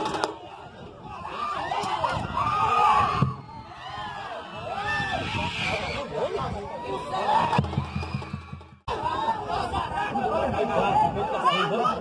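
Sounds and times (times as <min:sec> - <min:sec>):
spectators calling and shouting: 0:00.0 - 0:12.0.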